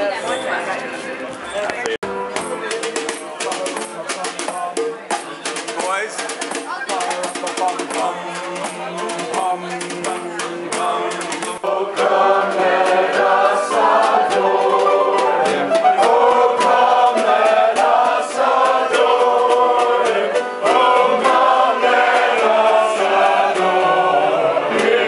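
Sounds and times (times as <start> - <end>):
group singing together: 6.9 - 25.0
piano playing: 8.2 - 25.0.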